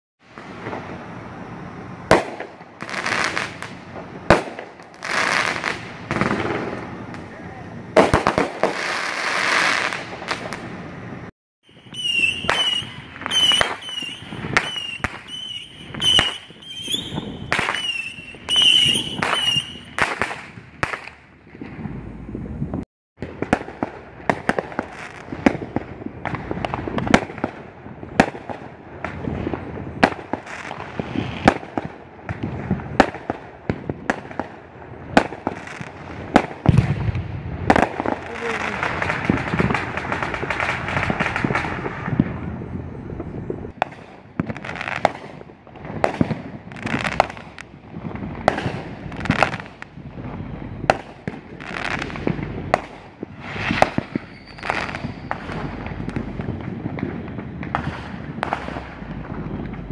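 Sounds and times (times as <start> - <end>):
fireworks bangs and pops: 0.2 - 59.9
fireworks crackling: 0.2 - 59.9.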